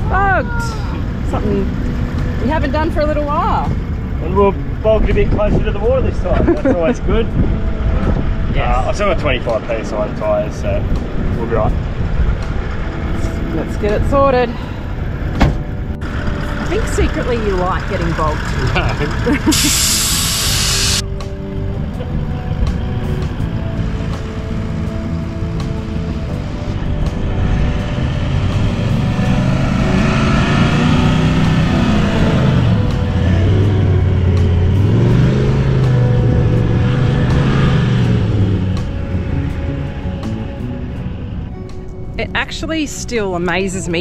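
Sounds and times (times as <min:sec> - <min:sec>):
engine revving: 0:00.0 - 0:42.9
background music: 0:00.0 - 0:44.0.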